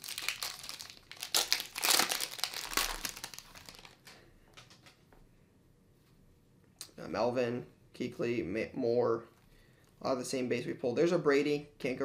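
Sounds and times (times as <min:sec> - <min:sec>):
wrapper tearing and crinkling: 0:00.0 - 0:04.2.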